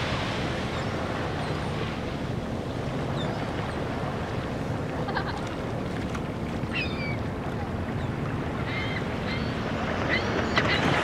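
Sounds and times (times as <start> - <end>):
small waves lapping on beach: 0.0 - 11.0.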